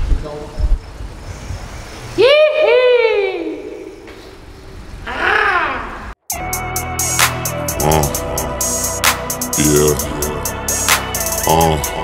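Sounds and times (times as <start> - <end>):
person yelling in echoing tunnel: 2.2 - 4.0, 7.8 - 8.6
hip hop beat: 6.3 - 12.0.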